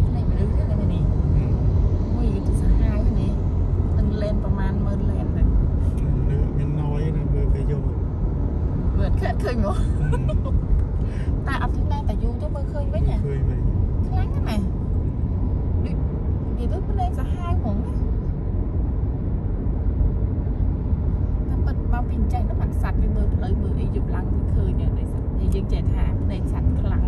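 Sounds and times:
people talking: 0:00.0 - 0:03.4, 0:04.0 - 0:08.0, 0:09.0 - 0:10.5, 0:11.1 - 0:14.7, 0:16.6 - 0:17.9, 0:21.5 - 0:27.0
car engine and road rumble: 0:00.0 - 0:27.0.

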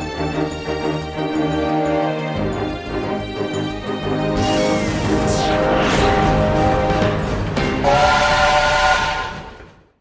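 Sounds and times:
steam locomotive whistle: 0:07.8 - 0:09.6.

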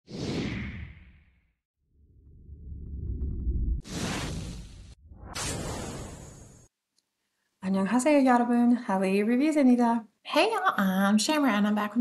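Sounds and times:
low rumble: 0:02.0 - 0:06.4
whoosh sound effect: 0:03.8 - 0:06.7.

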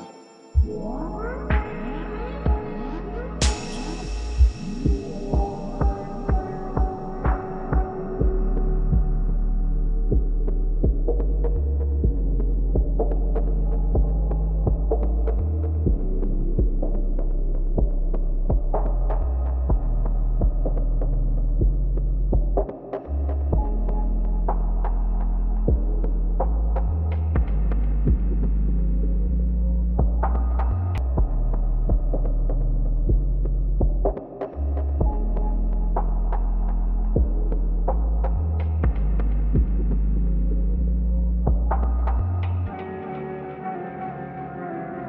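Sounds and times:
low thumps: 0:00.6 - 0:09.4, 0:37.1 - 0:40.8, 0:41.4 - 0:42.2
deep ambient drone: 0:00.6 - 0:45.0.

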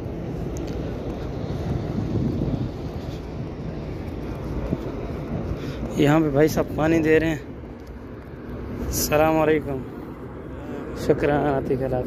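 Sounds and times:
wind on microphone: 0:00.0 - 0:05.9
bus traffic rumble: 0:00.0 - 0:12.0.

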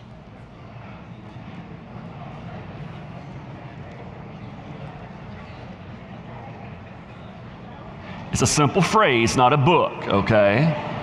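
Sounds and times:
hubbub of overlapping voices: 0:00.0 - 0:11.0.

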